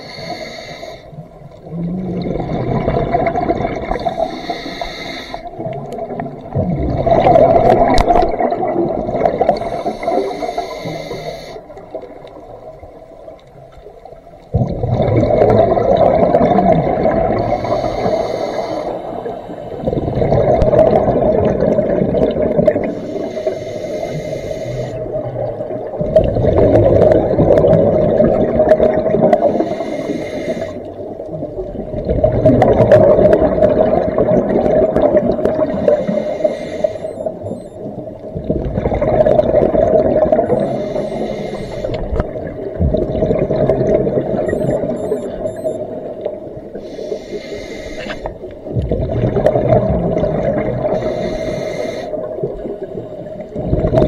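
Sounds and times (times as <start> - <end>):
regulator inhale hiss: 0.0 - 1.2, 4.0 - 5.5, 9.6 - 11.8, 17.4 - 19.8, 22.8 - 25.0, 29.5 - 30.9, 35.9 - 37.4, 40.6 - 42.2, 46.8 - 48.5, 50.9 - 52.3
gurgling exhaust bubbles: 1.6 - 4.2, 5.5 - 9.8, 14.5 - 17.7, 19.8 - 22.9, 25.0 - 29.5, 31.4 - 36.2, 38.4 - 40.7, 42.0 - 45.0, 48.7 - 51.1, 53.5 - 54.0.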